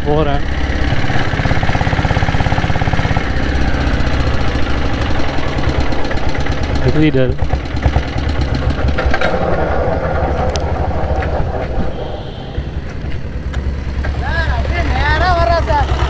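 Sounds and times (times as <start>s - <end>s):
diesel motorcycle engine running: 0.0s - 16.0s.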